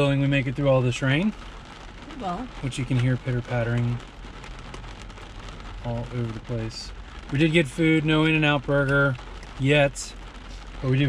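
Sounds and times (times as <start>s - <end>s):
rain pattering on truck: 0.0s - 11.0s.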